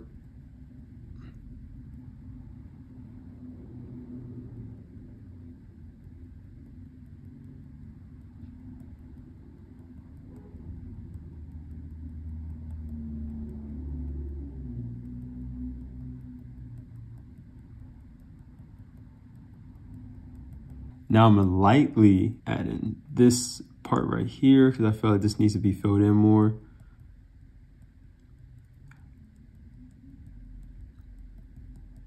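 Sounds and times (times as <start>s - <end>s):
low background rumble: 0.0s - 32.0s.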